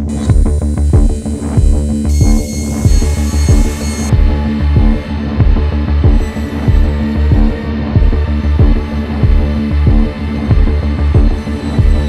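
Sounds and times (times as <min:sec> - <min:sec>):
deep pulsing beat: 0:00.0 - 0:12.0
low steady drone: 0:00.0 - 0:12.0.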